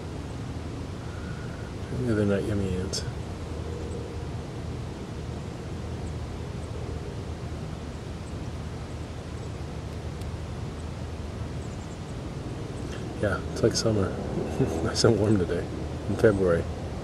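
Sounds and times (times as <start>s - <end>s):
faint hiss: 0.0s - 17.0s
low rumble: 12.8s - 17.0s.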